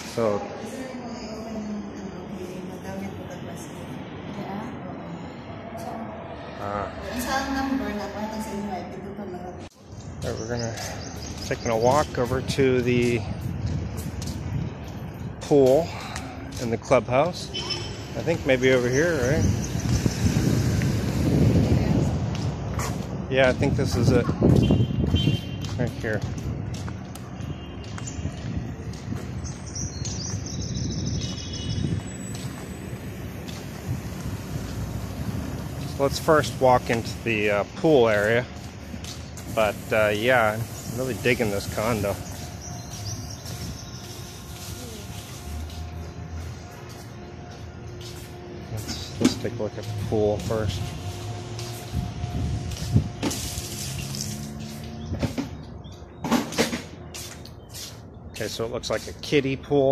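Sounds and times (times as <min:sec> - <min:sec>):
birds chirping: 0:00.1 - 0:04.3, 0:06.3 - 0:20.7, 0:24.4 - 0:53.0, 0:53.6 - 0:59.9
steady low rumble: 0:16.0 - 0:56.2.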